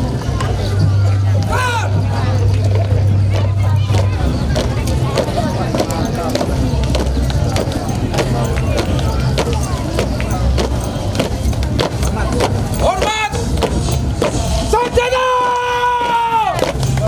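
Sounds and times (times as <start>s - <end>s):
crowd chatter: 0.0s - 17.0s.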